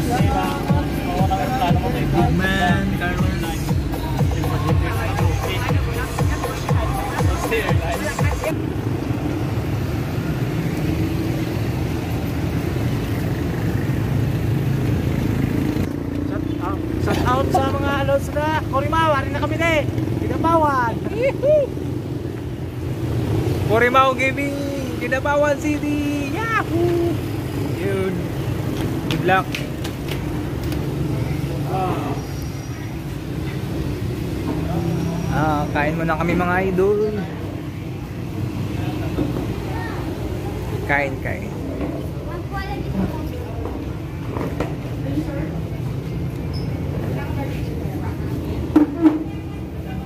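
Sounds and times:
indistinct voices: 0.0s - 8.6s
low traffic rumble: 0.0s - 50.0s.

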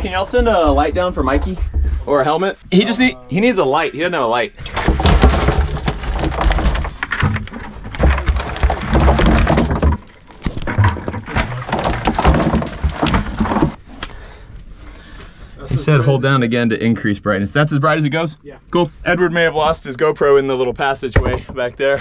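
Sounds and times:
stones dropping into plastic bucket: 4.6s - 13.8s
dirt and stones scraping: 4.6s - 13.9s.

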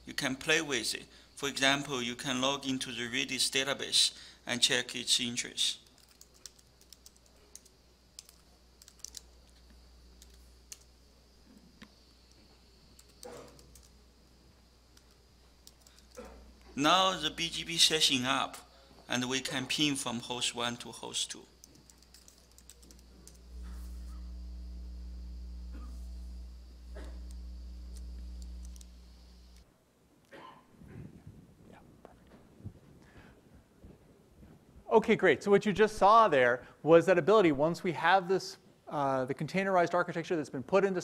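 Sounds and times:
steady low hum: 0.0s - 30.1s
typing on computer keyboard: 5.8s - 9.3s, 10.2s - 10.9s, 13.0s - 13.9s, 15.0s - 16.3s, 21.6s - 23.4s.

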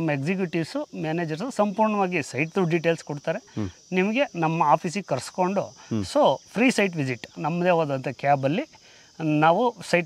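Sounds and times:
man talking: 5.9s - 6.2s.

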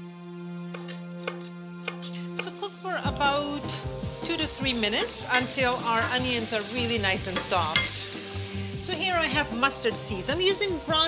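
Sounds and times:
soft background music: 0.0s - 11.0s
knife chopping on wooden board: 0.8s - 2.1s.

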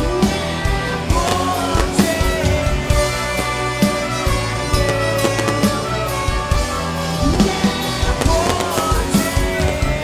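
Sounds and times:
band and orchestra playing: 0.0s - 10.0s
trumpet lead: 1.0s - 10.0s
drum hits: 1.2s - 2.4s.

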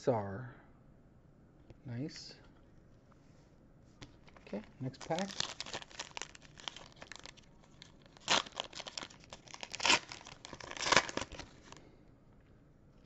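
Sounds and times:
foil wrapper tearing and crinkling: 4.3s - 11.8s.

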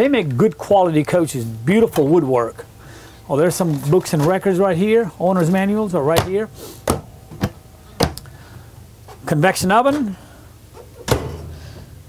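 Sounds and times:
sharp knock of stove cover: 11.1s - 11.9s.

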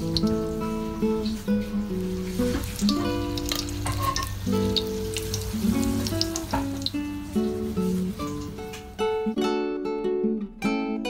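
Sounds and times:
spring rolls sizzling in hot oil: 0.0s - 9.2s
acoustic guitar music: 0.0s - 11.0s.

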